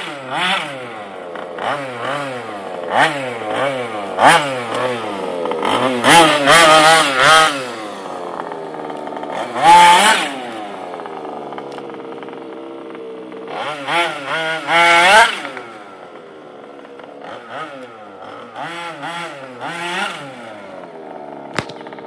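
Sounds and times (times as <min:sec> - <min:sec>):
small two-stroke engine revving: 0:00.0 - 0:22.0.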